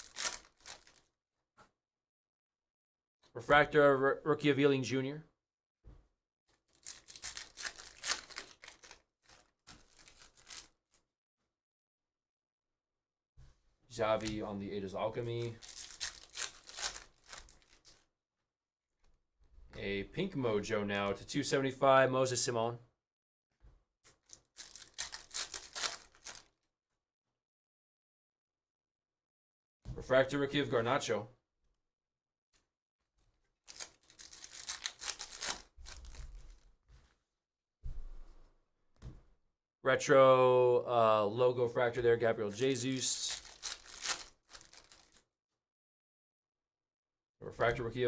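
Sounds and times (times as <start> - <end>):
trading cards rustling: 0.0 - 1.0, 6.7 - 10.8, 14.1 - 14.6, 15.3 - 18.0, 24.1 - 26.5, 33.7 - 36.6, 42.4 - 45.2.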